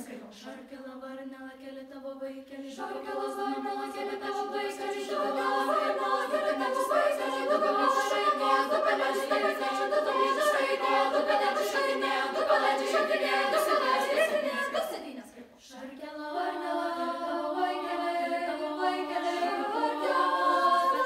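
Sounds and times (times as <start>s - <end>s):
youth choir singing: 2.4s - 21.0s.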